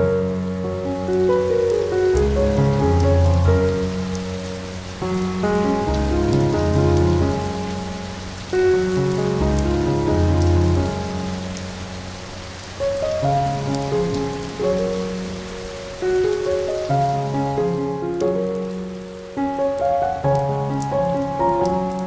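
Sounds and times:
falling rain: 0.0 - 22.0
slow relaxing music: 0.0 - 22.0.

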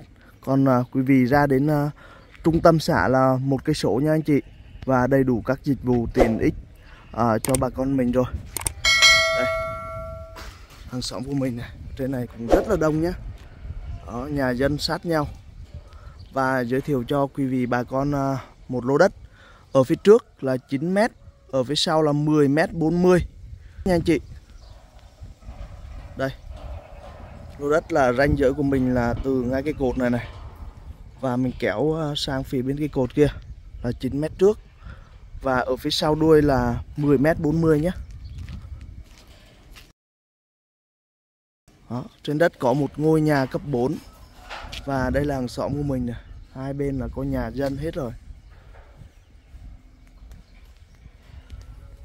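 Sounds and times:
wind rumble on microphone: 4.5 - 19.4, 21.0 - 39.9, 42.9 - 52.0
footsteps on dirt road: 37.9 - 39.9.

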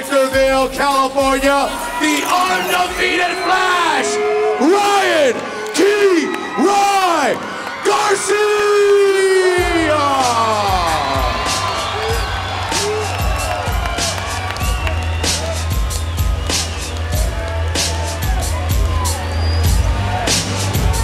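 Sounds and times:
announcer calling out a name: 0.1 - 11.6
crowd cheering: 1.0 - 21.0
music with heavy bass: 9.6 - 21.0.

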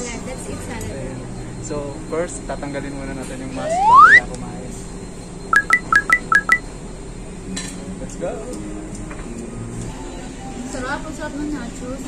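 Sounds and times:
electronic beeping jingle: 3.6 - 4.3, 5.5 - 6.6.

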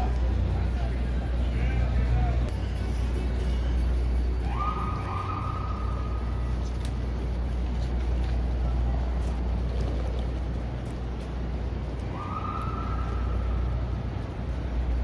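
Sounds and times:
faint passers-by voices: 0.0 - 15.0
traffic rumble: 0.0 - 15.0.

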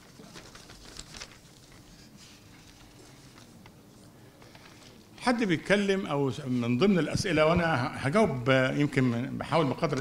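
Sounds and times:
paper rustling and shuffling: 0.0 - 5.2, 9.8 - 10.0
faint room hum: 0.0 - 10.0.

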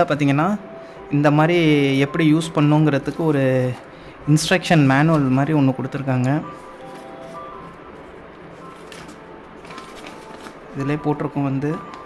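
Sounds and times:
soft background music: 0.0 - 12.0
paper leaflet crackling: 6.2 - 11.2.

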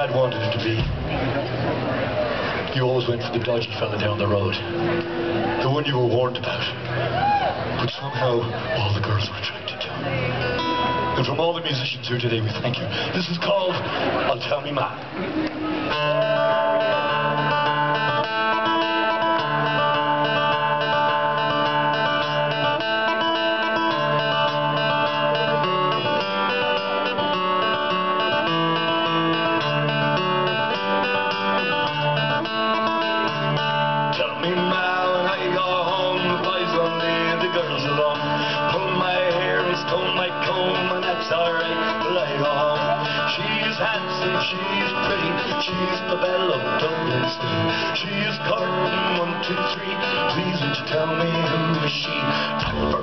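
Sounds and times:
bass line: 0.0 - 2.6, 15.2 - 53.0
acoustic guitars strumming: 0.0 - 53.0
electric guitar: 4.4 - 5.6, 6.4 - 8.8, 9.8 - 11.3, 15.0 - 53.0.

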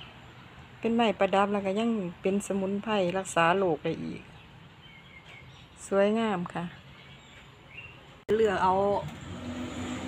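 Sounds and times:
faint bird chirp: 6.6 - 8.2.

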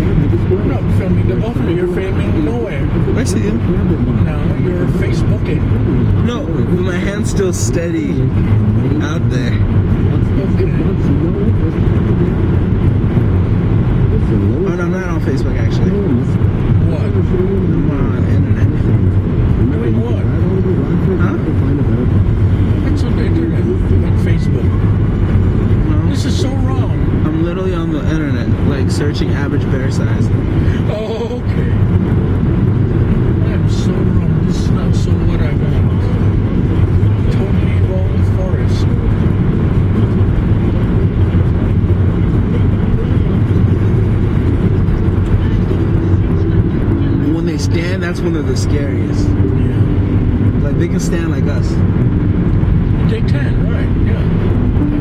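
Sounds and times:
car road and engine noise: 0.0 - 55.0
indistinct voices: 0.0 - 55.0.

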